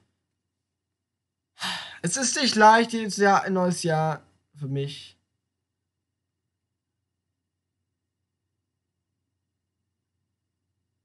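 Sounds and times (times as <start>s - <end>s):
man sighing: 1.6s - 2.0s.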